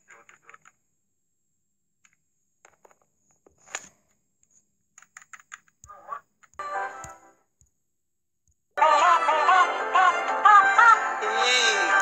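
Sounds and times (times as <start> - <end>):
music: 6.6 - 7.4, 8.8 - 12.0.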